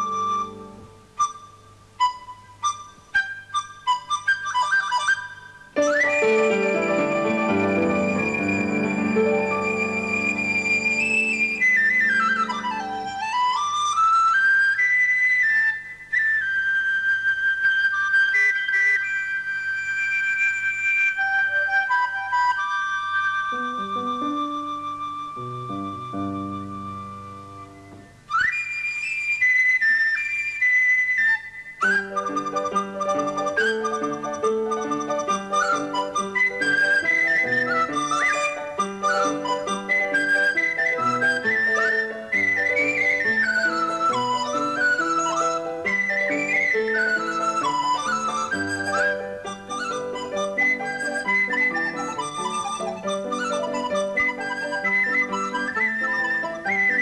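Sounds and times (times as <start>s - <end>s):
flute duet playing cheerful tune: 0.0s - 57.0s.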